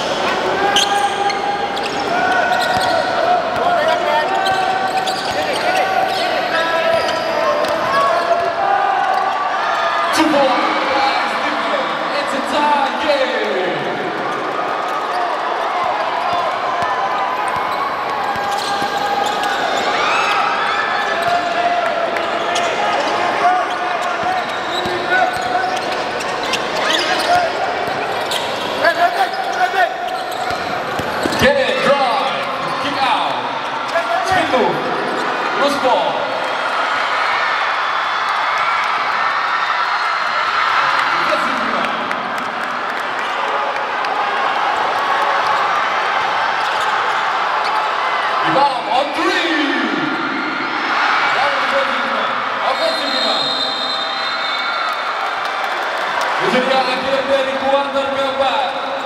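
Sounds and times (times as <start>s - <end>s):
voices in a hall: 0.0s - 59.0s.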